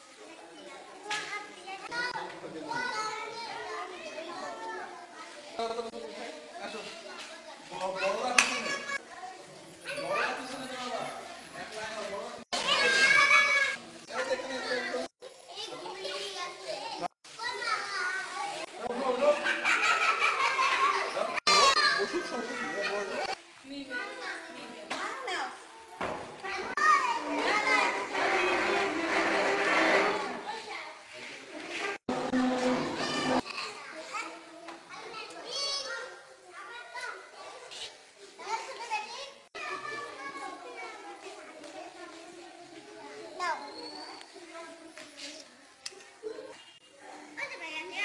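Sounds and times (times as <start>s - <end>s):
children's voices: 0.0s - 10.5s, 12.6s - 48.0s.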